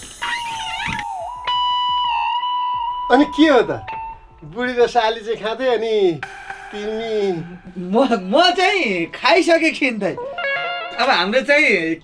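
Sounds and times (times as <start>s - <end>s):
background music with held high note: 2.8s - 11.2s
brighter held tone: 5.0s - 10.2s
short wavering sound: 6.2s - 9.4s.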